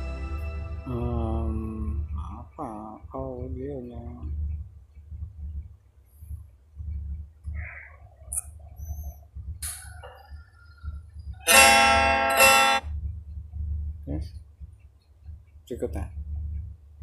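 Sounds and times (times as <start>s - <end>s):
faint guitar notes: 0.0s - 2.4s, 11.5s - 12.8s
steady low hum: 0.0s - 17.0s
loud held guitar tone: 11.5s - 12.8s.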